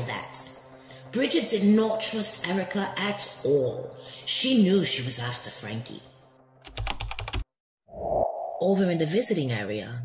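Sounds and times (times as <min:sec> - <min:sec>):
keyboard keystrokes: 0:06.6 - 0:07.5.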